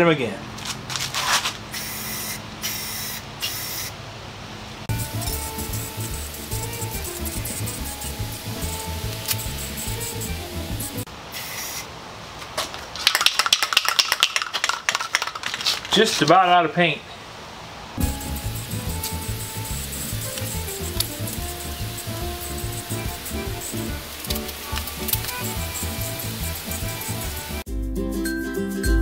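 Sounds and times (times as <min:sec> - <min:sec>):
spray paint can hissing: 0:01.2 - 0:03.9, 0:04.9 - 0:11.9, 0:13.0 - 0:15.9, 0:18.0 - 0:27.7
background music: 0:04.9 - 0:11.1, 0:18.0 - 0:29.0
mixing ball rattling in spray can: 0:04.9 - 0:11.1, 0:12.6 - 0:16.3, 0:18.0 - 0:27.7.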